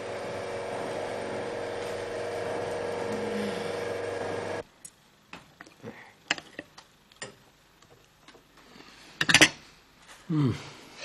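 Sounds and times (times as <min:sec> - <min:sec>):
machine humming steadily: 0:00.0 - 0:04.7.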